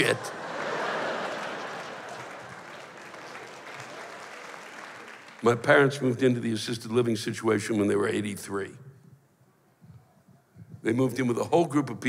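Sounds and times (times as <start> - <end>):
audience applause: 0.0 - 5.6.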